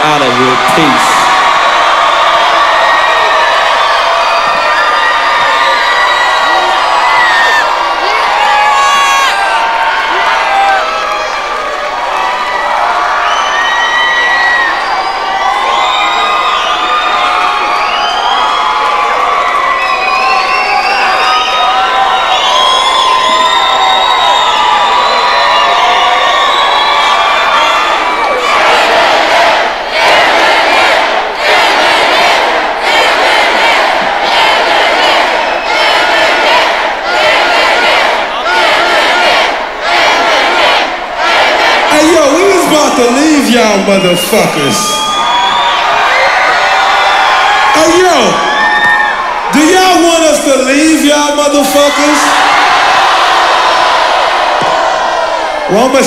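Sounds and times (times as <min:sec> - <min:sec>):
crowd cheering and screaming: 0:00.0 - 0:56.0.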